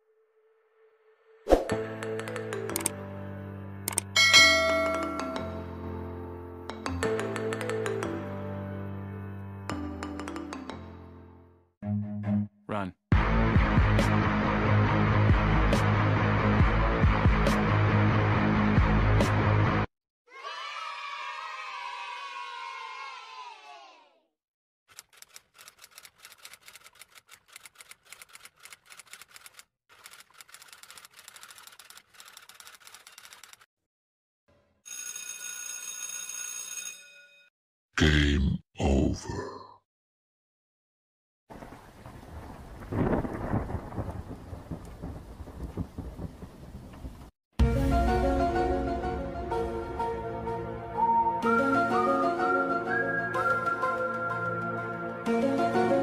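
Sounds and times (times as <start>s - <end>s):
bright bell chime: 4.2s - 5.6s
rapid irregular clicking: 24.9s - 33.7s.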